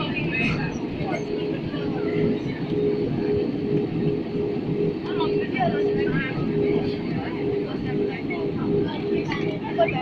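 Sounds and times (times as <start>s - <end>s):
faint voices talking: 0.0s - 10.0s
jet airliner cabin rumble: 0.0s - 10.0s.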